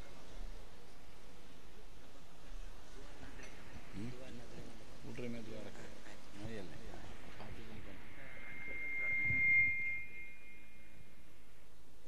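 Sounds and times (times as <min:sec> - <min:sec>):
high feedback whistle: 0:07.6 - 0:11.7.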